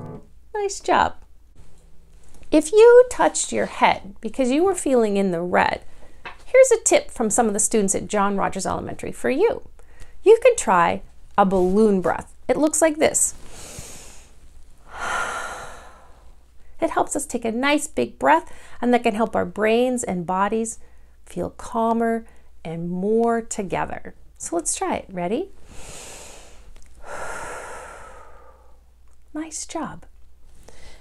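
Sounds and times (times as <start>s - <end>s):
woman breathing out slowly: 13.5s - 16.4s, 25.6s - 28.9s
woman exhaling through mouth: 14.9s - 16.2s, 25.8s - 28.8s.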